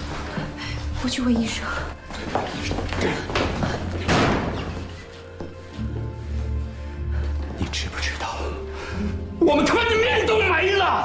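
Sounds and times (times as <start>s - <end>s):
hard slam: 4.0s - 4.8s.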